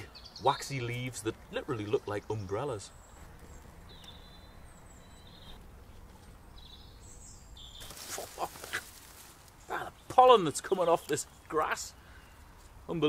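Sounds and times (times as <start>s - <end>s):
faint birdsong: 0.0s - 13.0s
sedge rustling: 7.6s - 11.8s.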